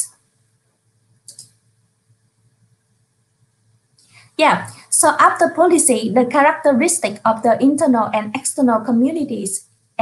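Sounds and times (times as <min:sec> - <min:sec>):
faint room hiss: 0:00.0 - 0:10.0
computer click: 0:01.2 - 0:01.6.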